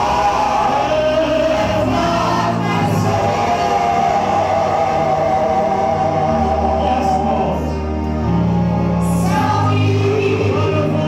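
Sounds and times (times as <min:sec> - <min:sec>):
backing singers: 0:00.0 - 0:08.4.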